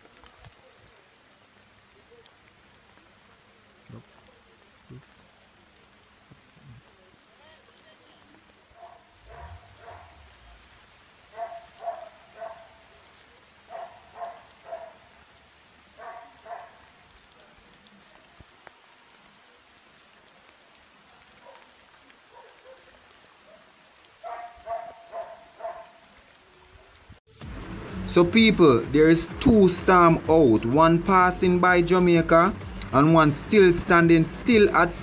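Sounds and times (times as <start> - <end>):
light rain hiss: 0.0 - 35.0
dog barking faintly: 0.2 - 1.2, 6.3 - 10.7, 11.3 - 15.3, 15.9 - 20.0, 21.0 - 27.2.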